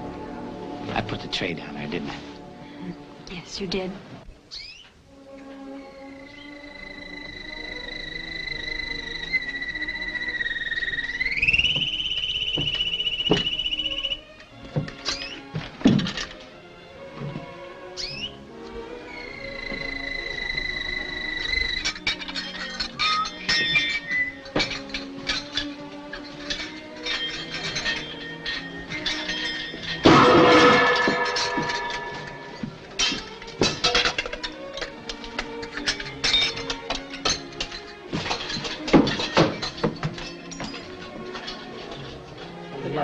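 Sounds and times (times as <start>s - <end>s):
short clinks and knocks: 21.8s - 42.1s
comic orchestral score: 27.8s - 36.9s
loud crash: 29.9s - 32.9s.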